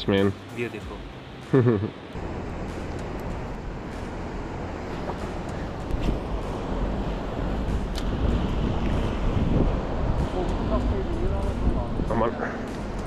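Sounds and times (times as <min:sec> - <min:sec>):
wind buffeting microphone: 0:03.2 - 0:13.0.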